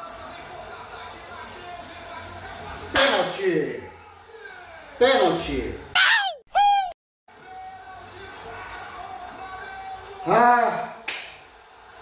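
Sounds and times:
hand slap: 3.0s - 3.2s, 11.0s - 11.4s
man shouting: 5.9s - 7.0s
man whooping: 5.9s - 7.0s.

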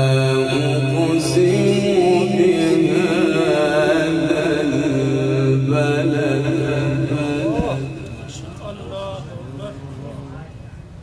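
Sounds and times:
man chanting melodically: 0.0s - 10.5s.

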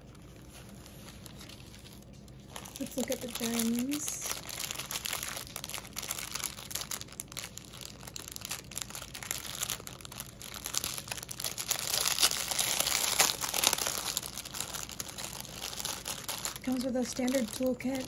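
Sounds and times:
plastic bag crinkling: 0.0s - 18.0s.

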